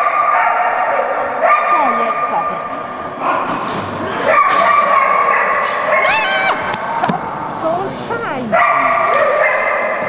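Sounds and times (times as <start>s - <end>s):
dog yelping and barking: 4.3s - 6.6s.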